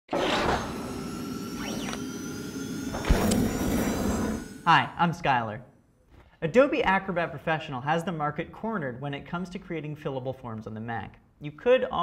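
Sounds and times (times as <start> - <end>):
whoosh: 0.1 - 5.1
synthesized tones with sweeps: 0.4 - 5.9.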